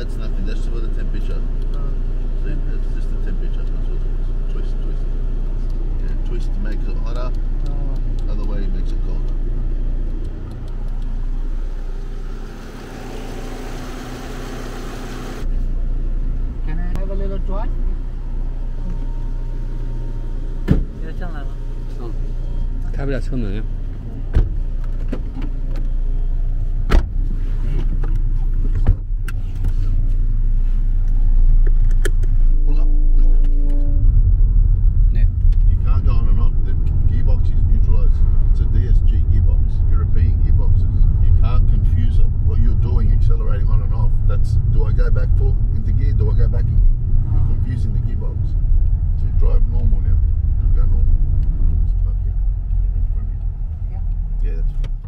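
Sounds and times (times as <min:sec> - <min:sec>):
engine and road rumble: 0:00.0 - 0:55.0
car doors shutting: 0:18.9 - 0:21.0, 0:24.0 - 0:26.0, 0:26.8 - 0:29.8.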